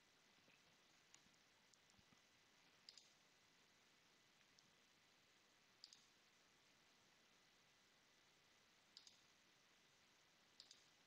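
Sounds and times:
computer mouse clicks: 0:02.8 - 0:03.2, 0:05.8 - 0:06.2, 0:09.0 - 0:09.3, 0:10.6 - 0:11.0.

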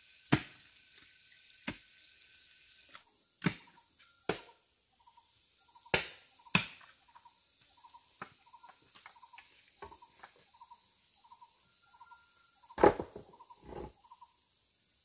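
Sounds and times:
insects droning: 0:00.0 - 0:15.0
hand tool chopping wood: 0:03.4 - 0:03.7, 0:12.8 - 0:13.9.

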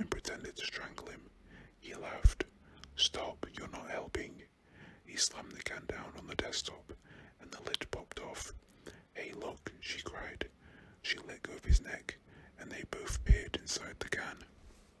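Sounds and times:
man whispering: 0:00.0 - 0:14.6.

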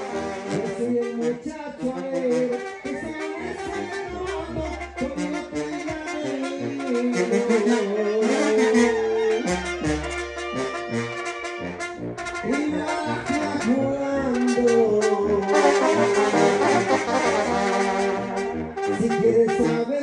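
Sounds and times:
brass band playing: 0:00.0 - 0:20.0.

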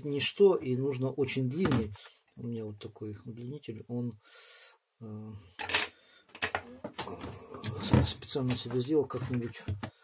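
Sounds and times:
man speaking: 0:00.0 - 0:04.2, 0:07.0 - 0:09.8
breath: 0:04.2 - 0:04.8, 0:05.9 - 0:06.3.

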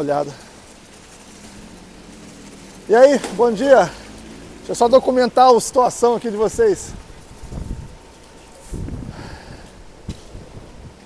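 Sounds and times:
wind buffeting microphone: 0:00.5 - 0:11.0.

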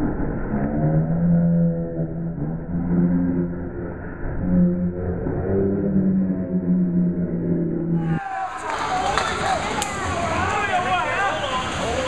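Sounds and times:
low muffled held tones: 0:00.0 - 0:08.2.

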